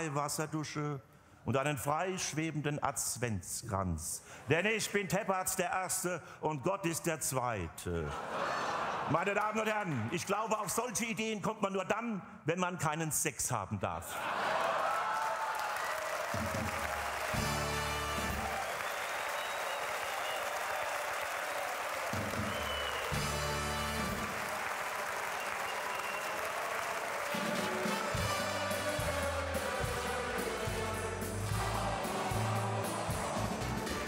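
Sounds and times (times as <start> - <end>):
audience applauding: 14.2 - 34.0
band music playing: 16.6 - 18.7, 22.1 - 24.6, 27.2 - 34.0.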